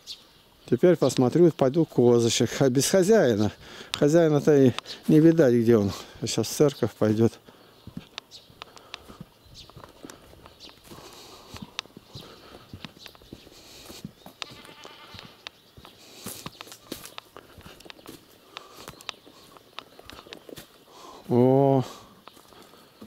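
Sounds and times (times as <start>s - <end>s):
footsteps on dry grass: 3.4s - 23.0s
goat bleating: 14.4s - 15.5s.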